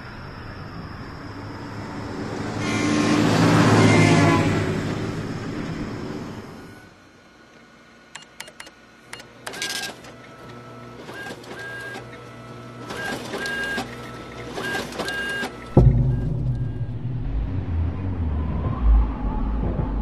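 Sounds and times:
printer feeding paper with whine: 0.0 - 15.8
printer clicks: 8.2 - 15.8
loud deep rumble: 15.7 - 20.0.

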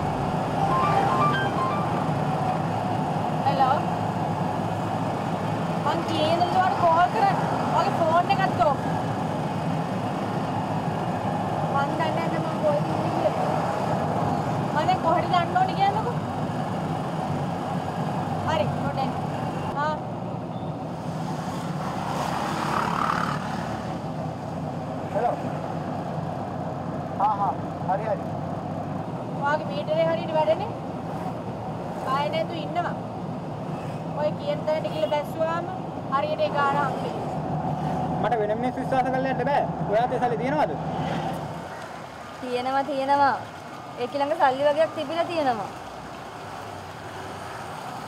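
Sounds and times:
people talking: 5.8 - 8.8, 11.8 - 13.5, 29.4 - 30.7, 34.2 - 37.2, 42.4 - 43.4, 44.0 - 45.7.

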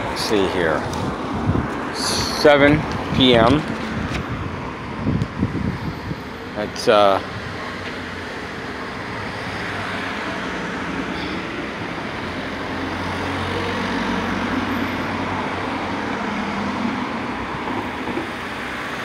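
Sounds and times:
passing vehicles: 0.0 - 19.0.

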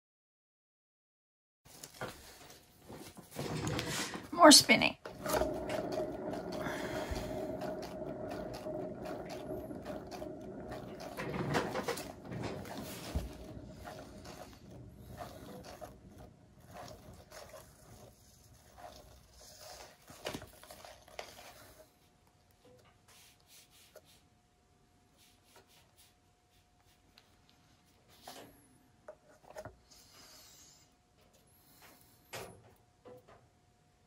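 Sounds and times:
turntable bearing whirring: 5.0 - 21.8.

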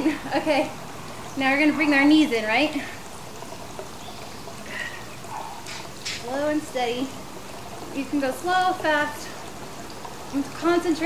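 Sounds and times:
steady hissing noise: 0.0 - 11.0.

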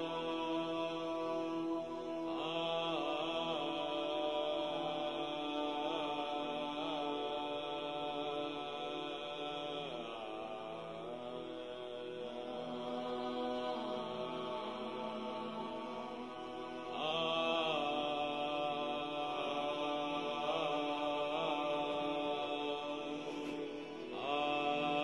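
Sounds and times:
slow chant in held notes: 0.0 - 25.0.

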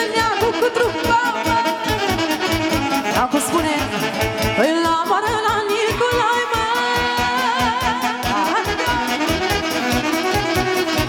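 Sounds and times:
saxophone dance band music: 0.0 - 11.0.

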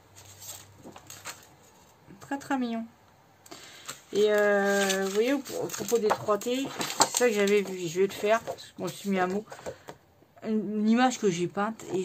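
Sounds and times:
plastic sheet ticks and rustles: 0.1 - 1.9, 3.8 - 9.8.

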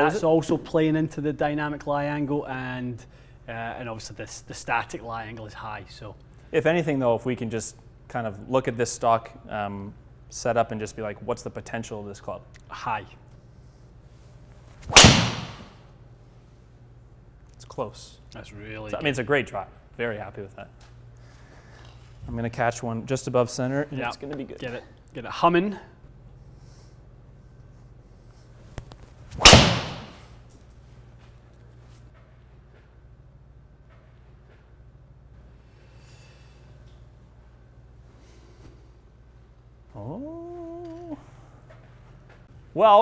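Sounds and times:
golf club striking ball: 14.9 - 15.8, 29.4 - 30.2.

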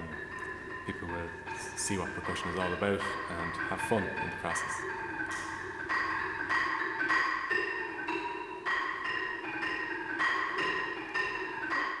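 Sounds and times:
mallet keyboard melody: 0.0 - 12.0
steady lower tone: 0.0 - 12.0.

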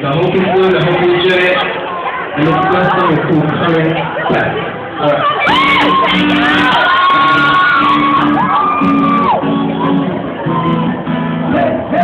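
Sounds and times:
live band playing chords: 0.0 - 12.0
audience screaming and whooping: 5.0 - 11.3.

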